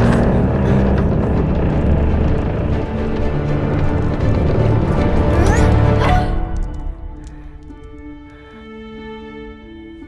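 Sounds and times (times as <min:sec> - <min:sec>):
dark orchestral film score: 0:00.0 - 0:10.0.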